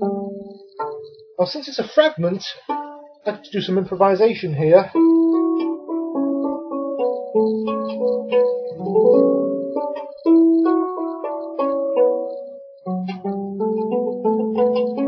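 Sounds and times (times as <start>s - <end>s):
plucked lyre melody: 0.0s - 1.4s, 2.2s - 15.0s.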